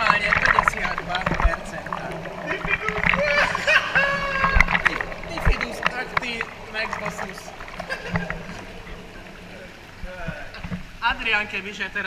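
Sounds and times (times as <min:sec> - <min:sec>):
steady low hum: 0:00.0 - 0:11.2
whirlpool bath water churning: 0:00.0 - 0:12.0.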